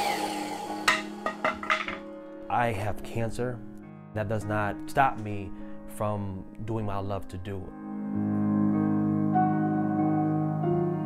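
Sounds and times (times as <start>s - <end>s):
saw blade whine winding down: 0.0s - 0.9s
wooden knocks: 0.9s - 2.1s.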